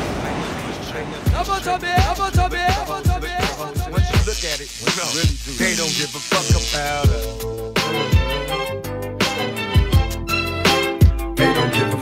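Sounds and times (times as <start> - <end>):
rapping over a beat: 0.0 - 8.7.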